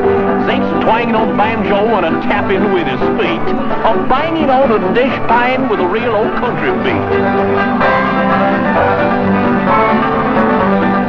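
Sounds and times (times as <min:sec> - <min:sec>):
country band music: 0:00.0 - 0:11.0
person singing: 0:00.0 - 0:11.0
plucked banjo: 0:00.0 - 0:11.0.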